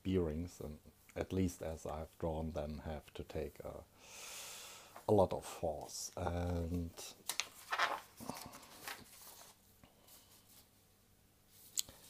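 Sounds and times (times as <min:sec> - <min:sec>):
paper sheets rustling: 0:06.4 - 0:10.7
paper scraping: 0:07.3 - 0:09.6.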